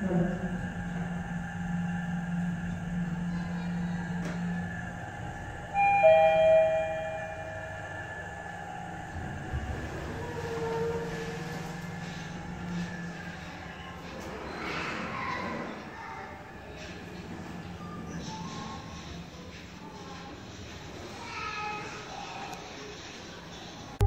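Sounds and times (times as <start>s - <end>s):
elevator doors rumbling open: 0.0s - 21.4s
elevator car droning: 0.0s - 24.0s
two-note elevator chime: 5.7s - 8.4s.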